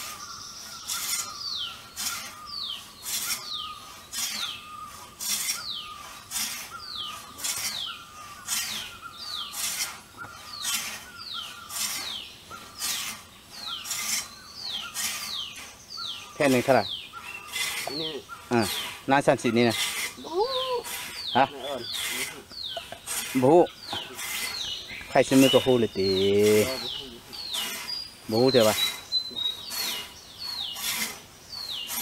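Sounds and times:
frame saw ripping timber: 0.0 - 15.8, 16.4 - 32.0.

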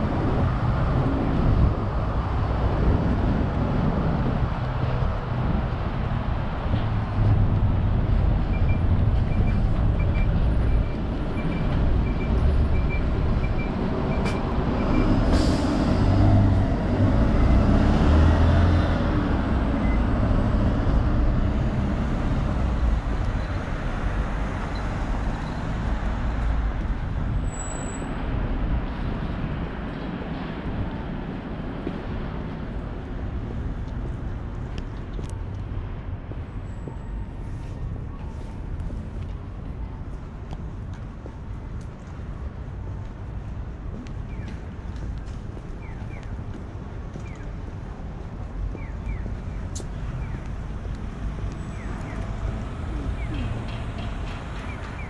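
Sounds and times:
bus engine rumble: 0.0 - 55.0
road traffic: 0.0 - 55.0
air brake hiss: 15.3 - 16.0.

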